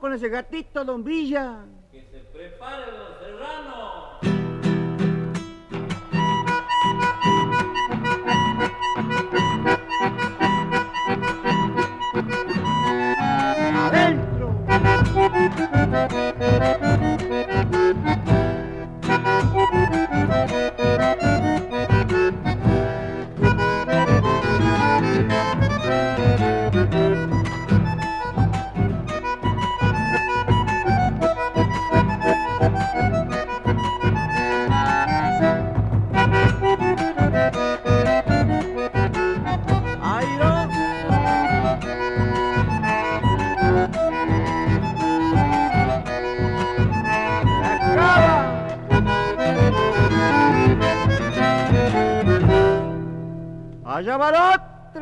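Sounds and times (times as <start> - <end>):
accordion-led folk band: 4.2 - 53.8
bass: 7.4 - 53.9.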